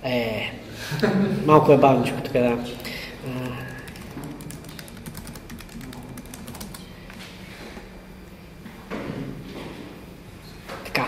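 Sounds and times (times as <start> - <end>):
computer keyboard typing: 2.8 - 7.2.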